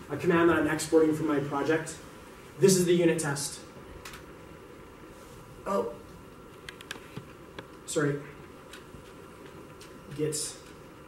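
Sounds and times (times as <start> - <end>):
faint room hum: 0.0 - 11.0
soft clicks: 6.6 - 7.8.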